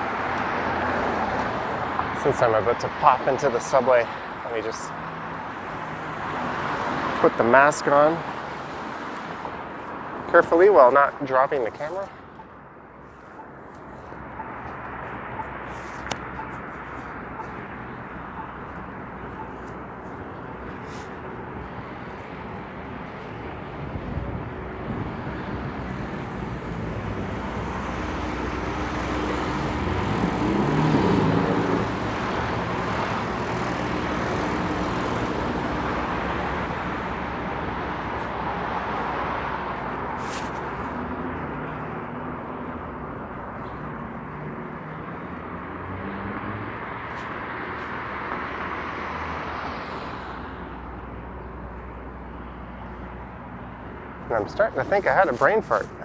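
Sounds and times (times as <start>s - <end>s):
cars driving past: 0.0s - 56.0s
vehicle passing close by: 23.7s - 51.3s.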